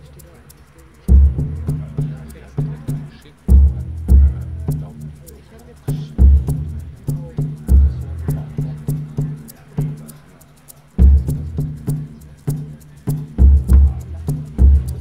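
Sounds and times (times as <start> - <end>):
faint sharp ticks: 0.0 - 1.2, 4.6 - 13.5
electronic drum strokes: 0.0 - 15.0.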